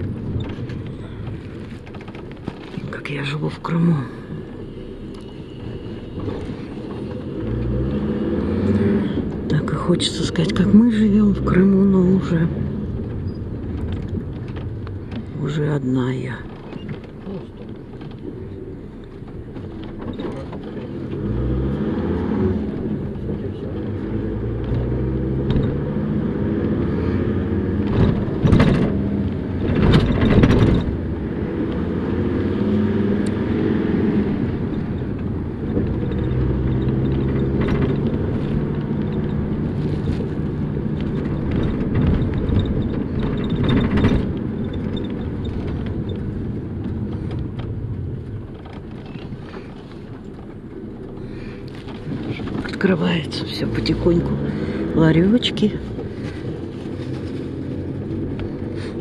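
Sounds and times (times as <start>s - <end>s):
bus body clattering: 0.0s - 3.0s, 16.3s - 21.3s, 27.4s - 31.4s, 34.5s - 53.4s
bus engine accelerating: 0.0s - 59.0s.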